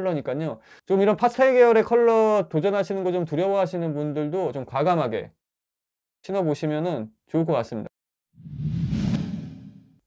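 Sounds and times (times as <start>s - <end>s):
whoosh transition effect: 8.4s - 10.0s.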